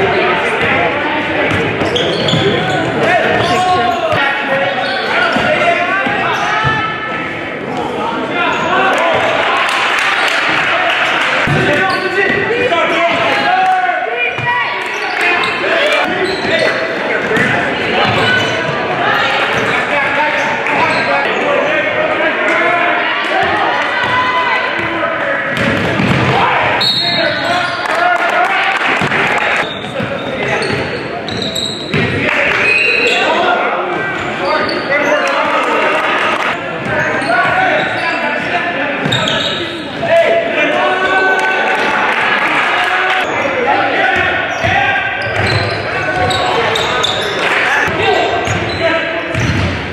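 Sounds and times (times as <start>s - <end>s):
voices of players and spectators: 0.0s - 49.9s
shoe squeaks: 1.8s - 5.4s, 11.8s - 12.2s, 14.9s - 18.7s, 20.4s - 21.4s, 29.6s - 32.0s, 32.6s - 33.4s, 39.0s - 39.9s, 44.5s - 47.5s.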